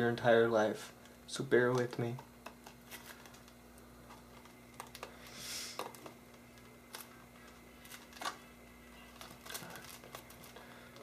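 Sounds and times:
faint steady hum: 0:00.0 - 0:11.0
plastic crinkling: 0:01.7 - 0:11.0.

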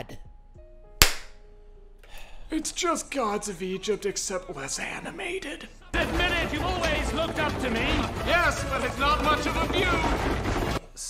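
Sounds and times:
sharp crack: 0:01.0 - 0:01.4.

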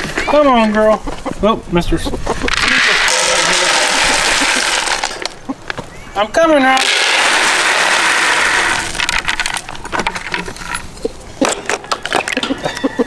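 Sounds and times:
pellets pouring into plastic pan: 0:02.5 - 0:05.4, 0:06.8 - 0:09.6
pellets clicking and knocking: 0:02.5 - 0:05.8, 0:06.7 - 0:10.8.

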